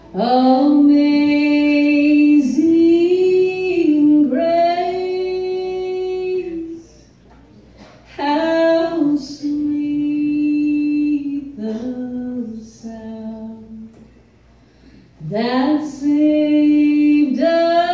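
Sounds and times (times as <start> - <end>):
woman singing gospel song: 0.1 - 7.0, 8.1 - 14.0, 15.2 - 17.9.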